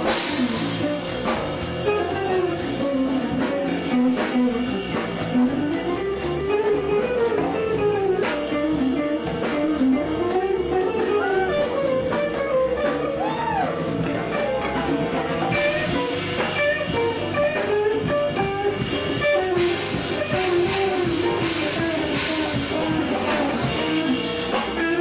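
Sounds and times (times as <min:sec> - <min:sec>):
electric guitar melody: 0:00.0 - 0:25.0
jazz band playing: 0:00.0 - 0:25.0.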